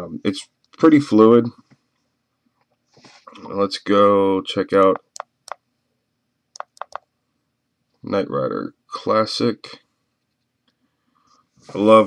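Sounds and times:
touchscreen keyboard clicks: 0:05.0 - 0:05.6, 0:06.6 - 0:07.1.

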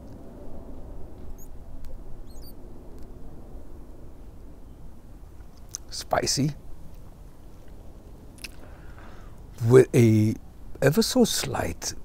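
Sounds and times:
low steady outdoor rumble: 0:00.0 - 0:12.0
high bird chirps: 0:02.2 - 0:02.6
lip clicks smoking: 0:08.4 - 0:08.6.

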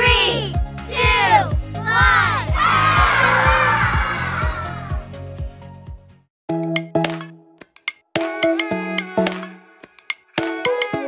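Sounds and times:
children group shout: 0:00.0 - 0:05.0
upbeat children's music: 0:00.0 - 0:11.0
children calling out: 0:01.0 - 0:05.0.

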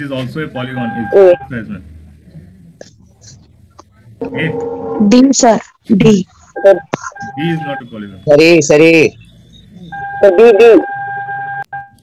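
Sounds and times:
high electronic beep: 0:06.6 - 0:12.0.

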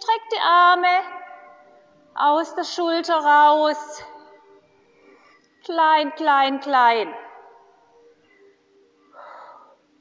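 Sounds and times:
woman speaking in reverberant hall: 0:00.0 - 0:01.5
faint background music: 0:00.0 - 0:10.0.

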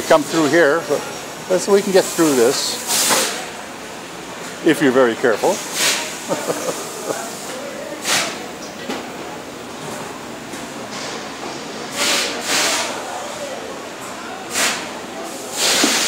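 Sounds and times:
faint voices: 0:00.0 - 0:16.0
workshop background noise: 0:00.0 - 0:16.0
compressed air hissing: 0:05.5 - 0:08.4, 0:11.9 - 0:13.0, 0:14.5 - 0:16.0.

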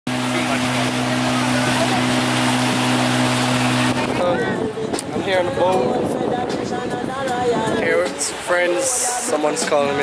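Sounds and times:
outboard motor droning: 0:00.1 - 0:06.1
rush of wind and water: 0:00.1 - 0:10.0.

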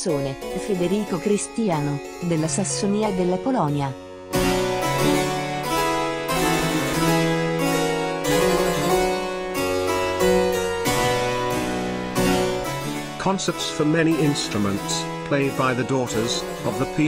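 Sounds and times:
baroque harpsichord music: 0:00.0 - 0:17.0.

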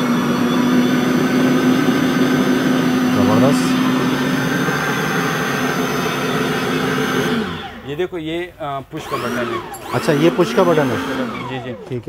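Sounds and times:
meat grinder motor humming: 0:00.0 - 0:08.0, 0:09.0 - 0:12.0.

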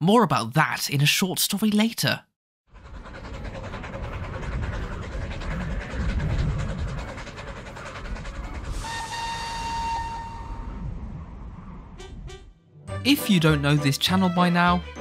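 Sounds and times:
steam train chugging: 0:02.7 - 0:10.9
steam whistle: 0:08.7 - 0:11.0.

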